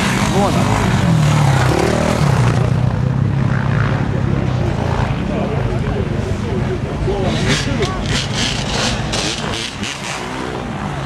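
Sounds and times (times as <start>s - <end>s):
motorcycle engines running: 0.0s - 11.0s.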